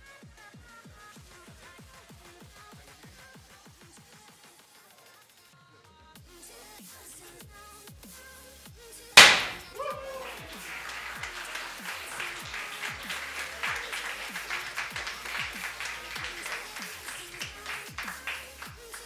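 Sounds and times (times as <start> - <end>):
confetti cannon pop: 9.2 - 11.0, 12.2 - 19.0
audience clapping and cheering: 9.2 - 19.0.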